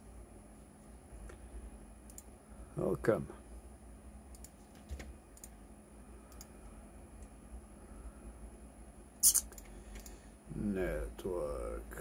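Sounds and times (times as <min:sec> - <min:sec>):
low electrical hum: 0:00.0 - 0:12.0
computer mouse clicks: 0:02.1 - 0:02.3, 0:04.3 - 0:05.6, 0:06.3 - 0:06.5, 0:09.2 - 0:10.2.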